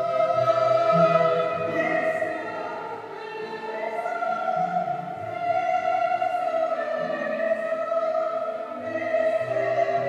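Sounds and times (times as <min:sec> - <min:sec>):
liturgical singing: 0:00.0 - 0:10.0.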